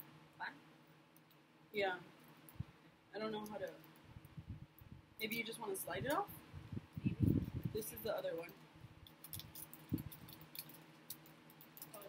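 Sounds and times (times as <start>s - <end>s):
plastic packaging crinkling: 9.1s - 12.0s.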